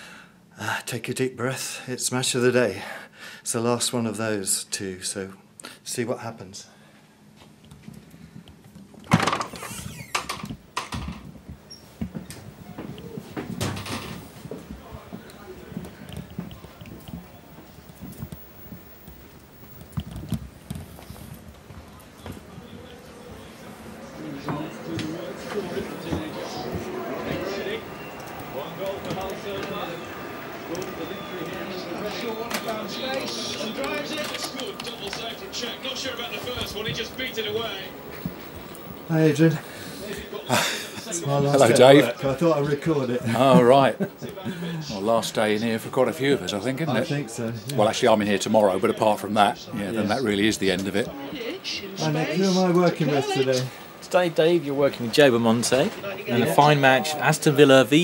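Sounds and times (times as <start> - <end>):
indistinct voices talking: 21.0 - 58.0.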